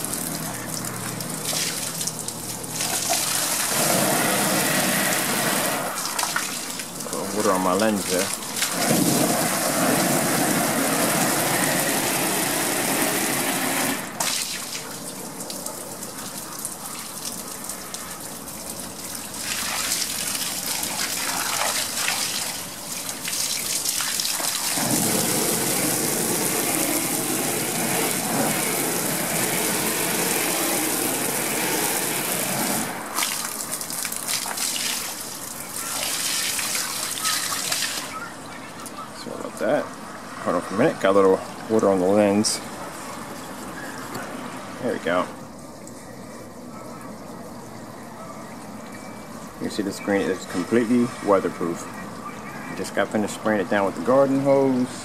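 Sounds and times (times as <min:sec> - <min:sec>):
hose spraying water on screen: 0:00.0 - 0:39.8, 0:49.1 - 0:55.0.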